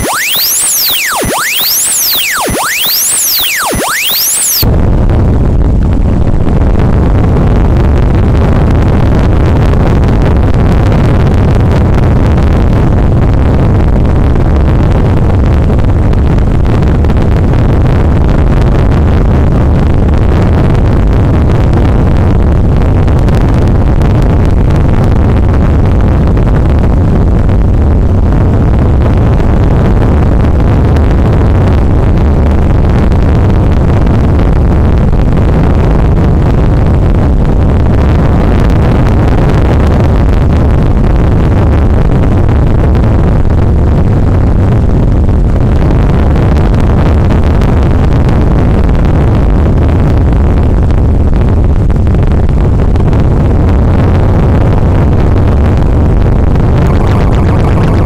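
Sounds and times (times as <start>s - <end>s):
harsh noise music: 0.0s - 4.6s, 56.6s - 58.0s.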